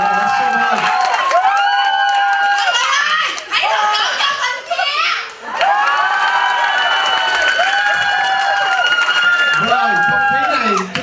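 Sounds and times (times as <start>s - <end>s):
audience cheering and shouting: 0.0s - 11.0s.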